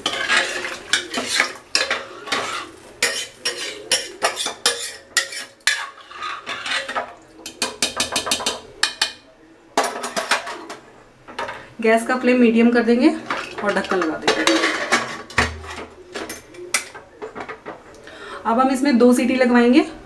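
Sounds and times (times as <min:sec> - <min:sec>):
spoon scraping metal pot: 0:00.0 - 0:09.2, 0:13.2 - 0:16.9.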